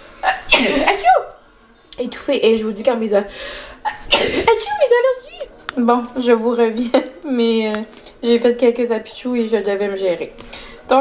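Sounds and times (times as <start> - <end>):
woman sneezing loudly: 0.2 - 1.2, 3.8 - 4.7.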